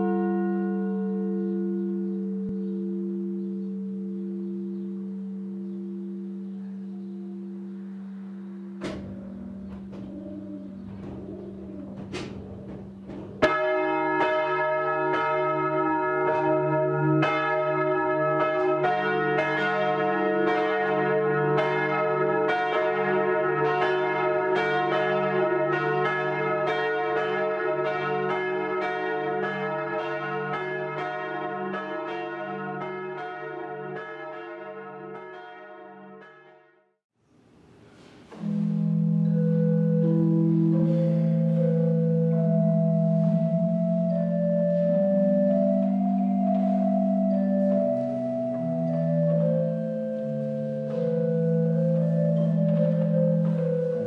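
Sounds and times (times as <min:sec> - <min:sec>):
held musical chord: 0:00.0 - 0:13.8, 0:38.3 - 0:54.0
church bells ringing: 0:00.0 - 0:36.8, 0:38.3 - 0:54.0
knocks: 0:08.8 - 0:13.6.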